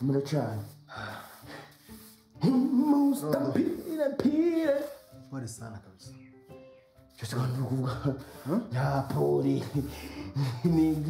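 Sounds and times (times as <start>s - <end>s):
breathing: 0.9s - 2.2s
man speaking: 2.4s - 6.0s.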